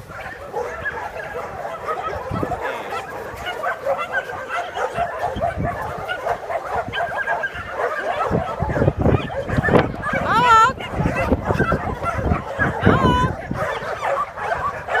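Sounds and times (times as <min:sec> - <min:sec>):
dogs yipping and whining: 0:00.0 - 0:15.0.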